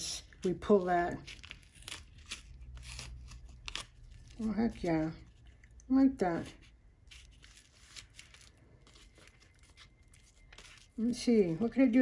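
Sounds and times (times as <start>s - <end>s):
paper rustling: 6.3s - 12.0s.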